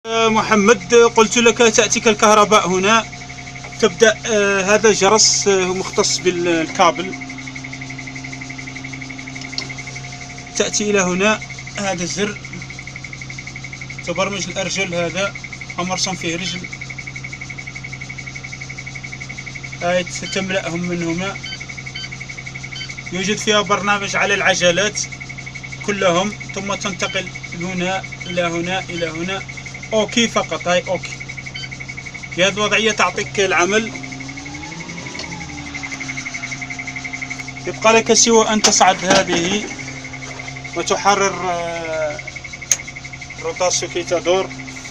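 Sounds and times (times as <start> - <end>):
alarm buzzer pulsing high tone: 0.0 - 44.9
faint rising and falling whine: 0.0 - 44.9
low steady hum: 0.0 - 44.9
rapid electronic warning beeps: 0.0 - 44.9.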